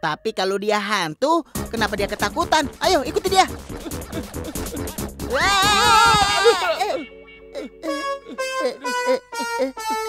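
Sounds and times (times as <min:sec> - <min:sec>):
playful cartoon music: 0:01.5 - 0:10.0
cartoon character screaming: 0:05.3 - 0:07.0.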